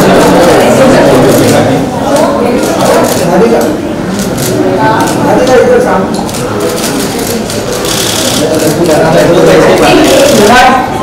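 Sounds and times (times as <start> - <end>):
people talking at once: 0.0 - 11.0.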